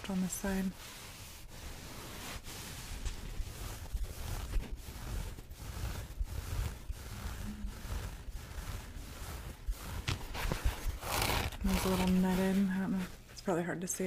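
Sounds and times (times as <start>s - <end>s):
fingertips scratching a sponge: 0.0s - 13.2s.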